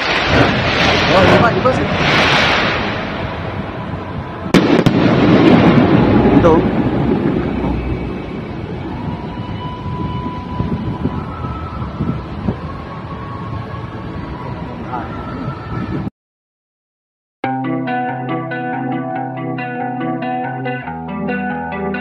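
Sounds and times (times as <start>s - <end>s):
firework bangs: 0.0s - 8.6s
firework rumbling crackle: 0.0s - 13.2s.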